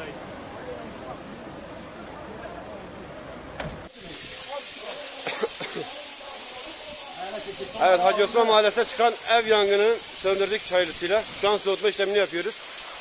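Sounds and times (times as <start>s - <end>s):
outdoor noise: 0.0s - 13.0s
voices: 0.0s - 13.0s
fire hose spraying water: 3.8s - 13.0s.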